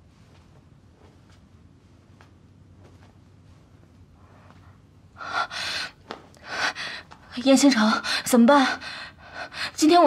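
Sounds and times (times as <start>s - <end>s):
woman gasping and breathing hard: 5.2s - 7.2s.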